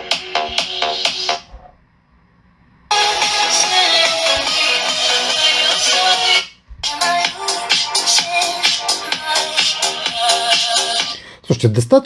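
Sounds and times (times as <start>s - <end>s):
electronic dance music from phone speaker: 0.0s - 1.5s, 2.9s - 11.2s.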